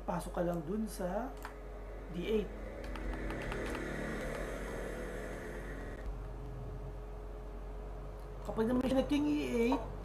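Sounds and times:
low hum: 0.0s - 8.3s
mechanical whir: 1.4s - 6.6s.

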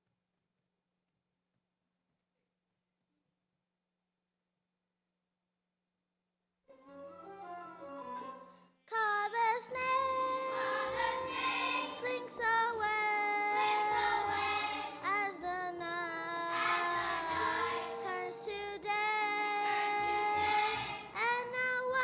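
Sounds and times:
backing music: 6.7s - 8.7s, 9.8s - 22.0s
child singing: 8.9s - 22.0s.

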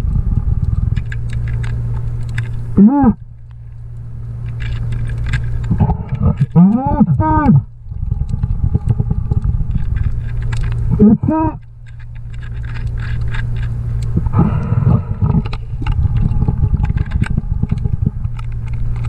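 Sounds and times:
steady underwater hum: 0.0s - 19.0s
scattered clicks: 0.7s - 19.0s
diver grunting: 2.8s - 3.2s, 5.7s - 7.7s, 10.9s - 11.6s, 14.2s - 15.5s
rush of noise: 14.2s - 19.0s.

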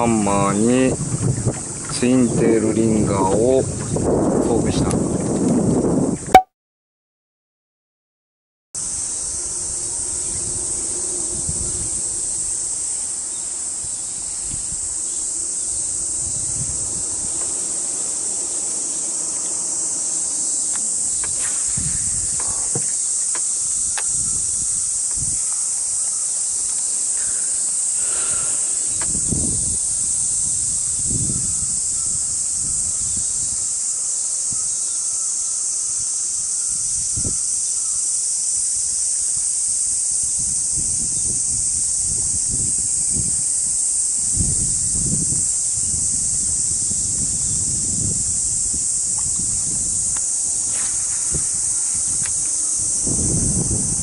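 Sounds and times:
high-pitched insect chorus: 0.0s - 5.0s, 8.8s - 54.0s
wind and handling thumps: 0.8s - 6.4s, 20.6s - 25.9s, 28.8s - 29.7s, 46.8s - 54.0s.

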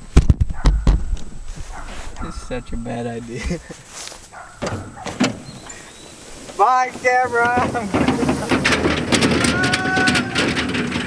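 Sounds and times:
lawn tractor engine running: 4.3s - 11.0s.

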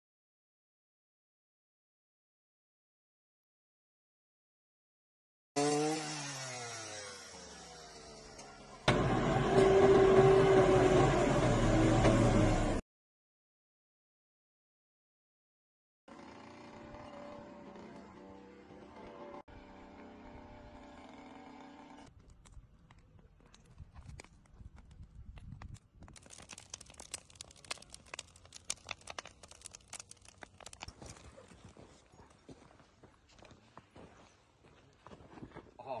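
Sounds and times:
small motor winding down: 5.6s - 12.8s, 16.1s - 22.1s
diesel engine running: 8.2s - 12.8s
burning plants crackling: 22.2s - 32.0s.

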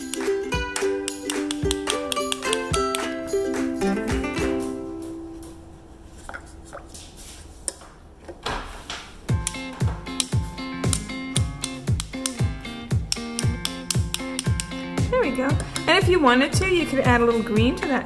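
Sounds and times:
plucked string tune: 0.0s - 5.5s, 9.3s - 18.0s
deep kick drum beat: 9.3s - 17.8s
person singing: 13.2s - 13.9s.

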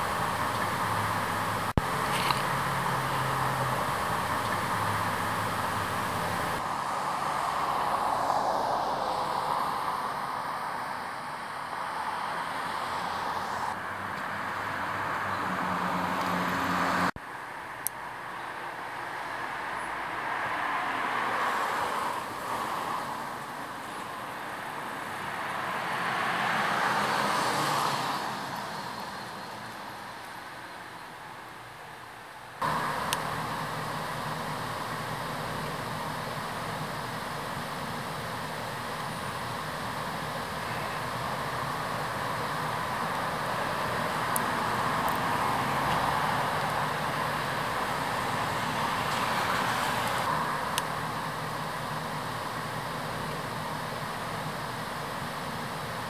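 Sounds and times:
cars passing: 0.0s - 56.0s.

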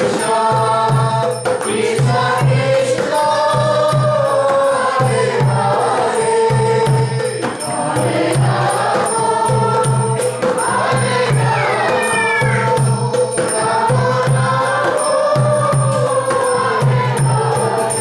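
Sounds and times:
hand percussion rattle: 0.0s - 18.0s
voices chanting melodically: 0.0s - 18.0s.

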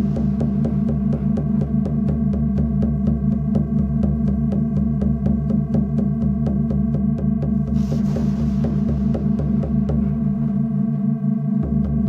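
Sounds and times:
pulsing synthesized drone: 0.0s - 12.0s.

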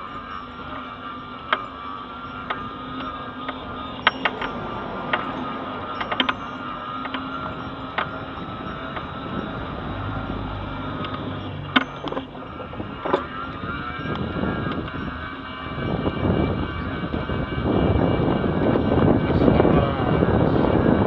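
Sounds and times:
car approaching: 0.0s - 21.0s
mobility scooter motor whining: 0.0s - 21.0s.

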